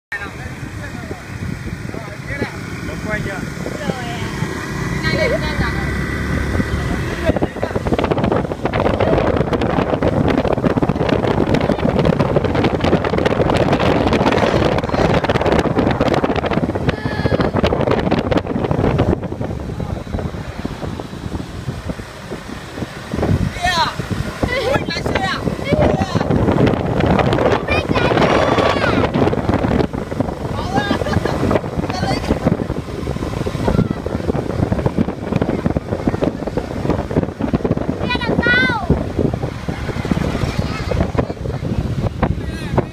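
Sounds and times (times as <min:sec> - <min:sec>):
motor scooter engines: 0:00.1 - 0:42.9
traffic noise: 0:00.1 - 0:42.9
wind buffeting microphone: 0:00.1 - 0:42.9.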